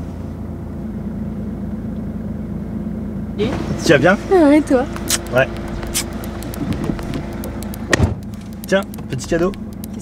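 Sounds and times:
car engine running: 0:00.0 - 0:10.0
sharp click: 0:05.0 - 0:10.0.

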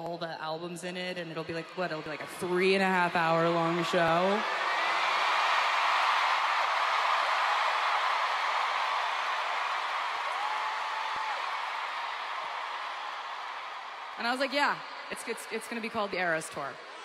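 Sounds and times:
crowd cheering and screaming: 0:01.7 - 0:17.0.

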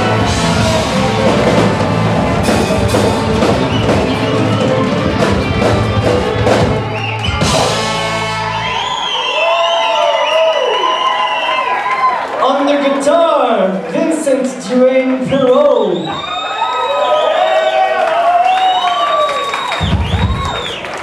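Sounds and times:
band playing drums and percussion: 0:00.0 - 0:08.7, 0:19.7 - 0:21.0
crowd cheering and whooping: 0:00.0 - 0:12.5, 0:15.8 - 0:21.0.

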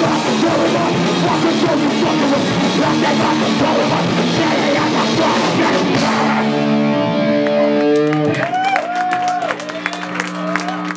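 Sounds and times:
electric guitar notes ringing: 0:05.8 - 0:08.5.

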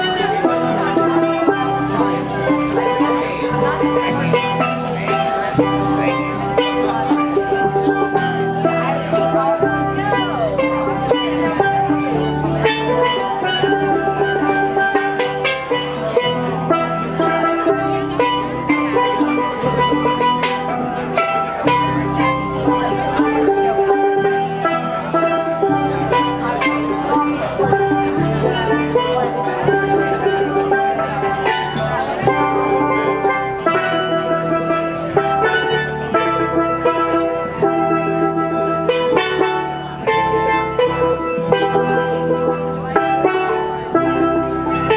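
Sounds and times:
drum kit: 0:00.0 - 0:44.9
steel pans ringing notes: 0:00.0 - 0:44.9.

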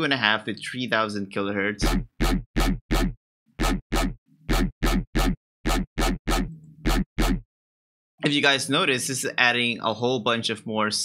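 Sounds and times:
choppy bass synth stabs: 0:01.8 - 0:07.4.

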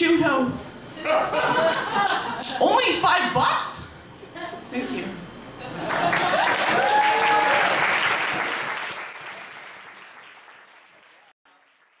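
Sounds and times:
audience applauding: 0:05.8 - 0:12.0
person cheering: 0:06.4 - 0:07.8.

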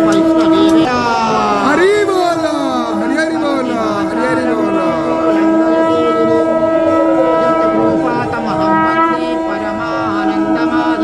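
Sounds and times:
conch shell blown in long note: 0:00.0 - 0:11.0
voices chanting: 0:00.0 - 0:11.0.

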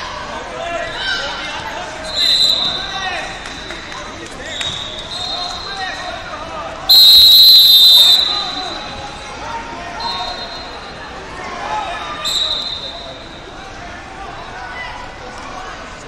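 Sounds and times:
crowd chatter: 0:00.0 - 0:16.0
shrill referee whistle blast: 0:02.0 - 0:03.0, 0:04.5 - 0:05.8, 0:06.9 - 0:08.9, 0:10.0 - 0:11.0, 0:12.2 - 0:13.4
faint distant whistles: 0:02.0 - 0:06.0, 0:06.9 - 0:09.4, 0:10.0 - 0:11.0, 0:12.1 - 0:13.5.

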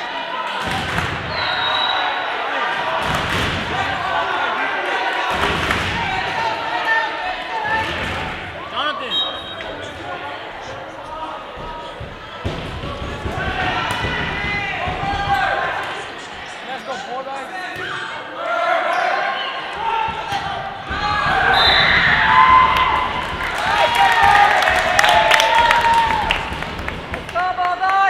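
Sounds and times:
players shouting: 0:12.3 - 0:16.2, 0:17.5 - 0:28.0.

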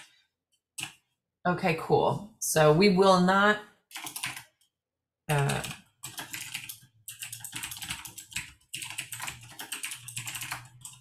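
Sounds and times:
fast typing on keyboard: 0:00.8 - 0:01.0, 0:03.9 - 0:04.6, 0:05.3 - 0:11.0.

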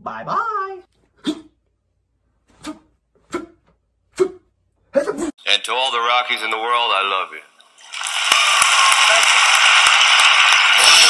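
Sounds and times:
audience applauding: 0:07.7 - 0:11.0.

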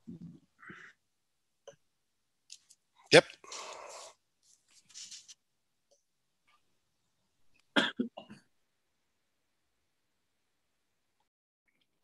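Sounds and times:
person coughing: 0:07.8 - 0:08.4.

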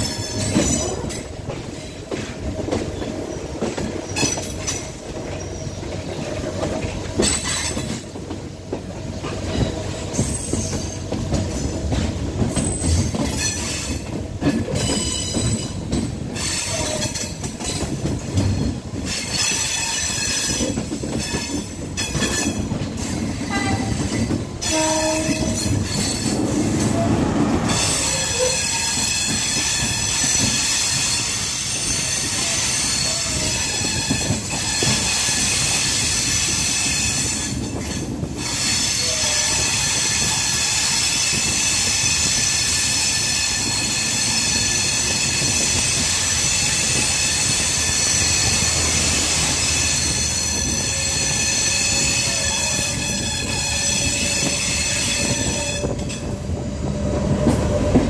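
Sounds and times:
train wheels knocking on rails: 0:00.0 - 0:56.4
train horn: 0:23.5 - 0:24.0, 0:24.6 - 0:25.8, 0:26.6 - 0:29.1, 0:38.9 - 0:40.0, 0:50.5 - 0:56.3
high-pitched wheel squeal: 0:24.6 - 0:30.2, 0:46.6 - 0:56.3.

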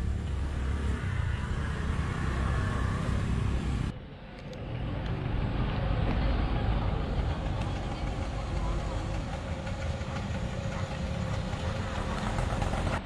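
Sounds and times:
outdoor ambience with low rumble: 0:00.0 - 0:13.0
quiet outdoor ambience: 0:00.0 - 0:13.0.

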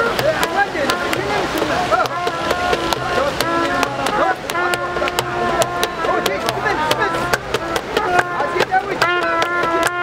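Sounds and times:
crowd voices: 0:00.0 - 0:10.0
hands clapping: 0:00.0 - 0:10.0.

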